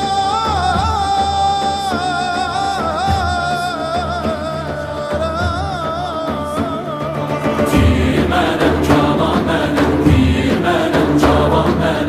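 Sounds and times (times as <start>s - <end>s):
frame drums beating: 0.0s - 12.0s
string instruments: 0.0s - 12.0s
voices chanting together: 6.5s - 12.0s.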